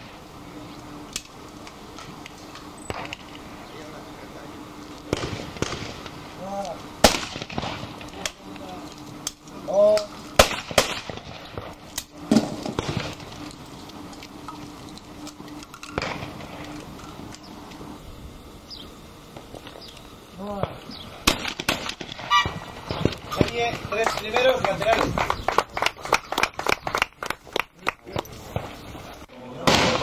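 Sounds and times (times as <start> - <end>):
shotgun shots: 5.1 - 6.2, 7.0 - 8.4, 10.4 - 13.2, 16.0 - 16.6, 21.2 - 23.6, 29.6 - 30.0.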